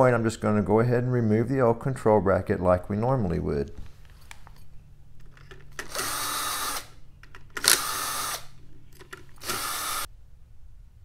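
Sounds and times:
power drill backing out screws: 5.7 - 10.1.

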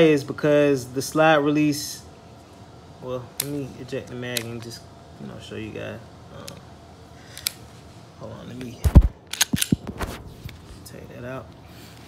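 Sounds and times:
pistol clicks: 9.3 - 9.9.

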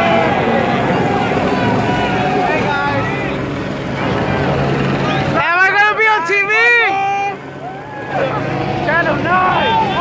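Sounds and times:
car engine and road noise: 0.0 - 10.0
indistinct voices talking: 0.0 - 10.0.

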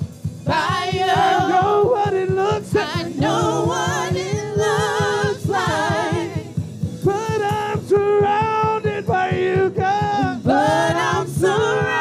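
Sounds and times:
low steady beat: 0.0 - 12.0
choir singing in harmony: 0.4 - 6.7, 10.4 - 12.0.

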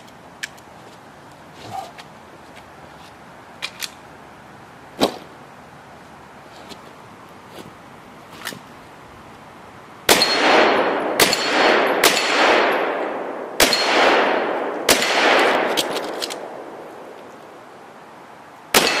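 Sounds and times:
metallic ring of steel targets: 10.1 - 16.0, 18.8 - 19.0
pistol shots echoing: 10.1 - 17.1, 18.7 - 19.0.

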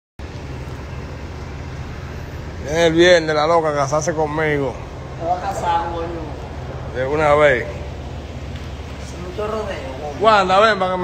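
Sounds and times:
vehicle engine idling: 0.2 - 11.0.

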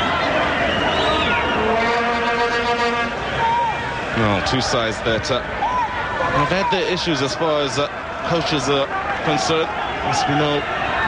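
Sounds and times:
stadium crowd noise: 0.0 - 11.0
vuvuzela steady note: 1.6 - 3.2.

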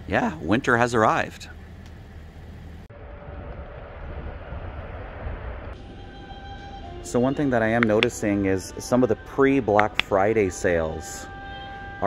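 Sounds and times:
indoor hum: 0.0 - 12.0
low rumble with hiss: 0.0 - 12.0.

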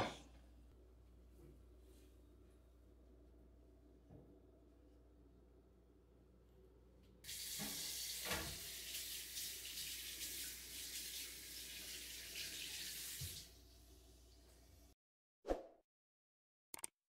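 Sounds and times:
tap water running into sink: 7.3 - 13.7.

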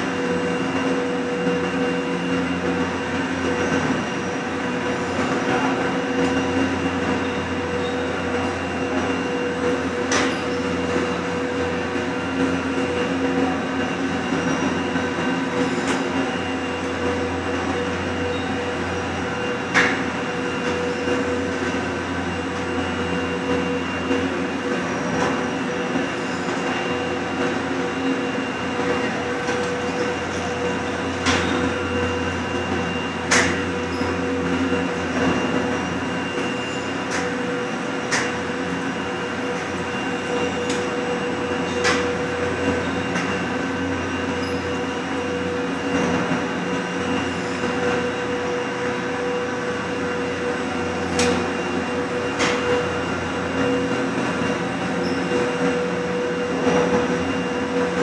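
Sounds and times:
lift machinery droning: 0.0 - 58.0.

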